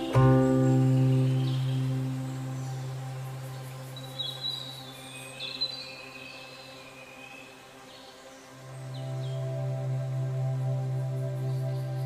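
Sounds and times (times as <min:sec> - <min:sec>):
bird-like chirps: 0:00.0 - 0:06.1
ambient music drone: 0:00.0 - 0:12.0.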